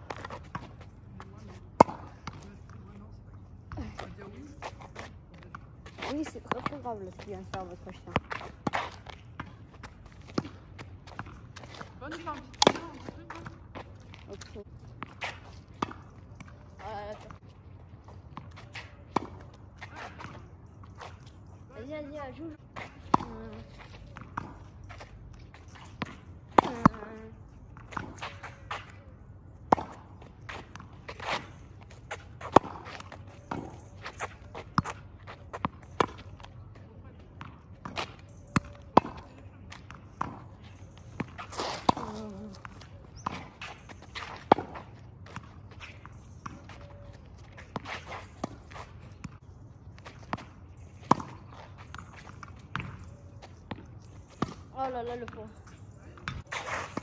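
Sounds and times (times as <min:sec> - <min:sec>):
shoes scuffing road: 0:00.0 - 0:03.1, 0:03.7 - 0:21.4, 0:29.7 - 0:55.6, 0:56.3 - 0:57.0
ball bouncing on asphalt: 0:00.0 - 0:57.0
racket striking tennis ball: 0:12.5 - 0:13.6, 0:29.7 - 0:35.0, 0:40.2 - 0:46.6.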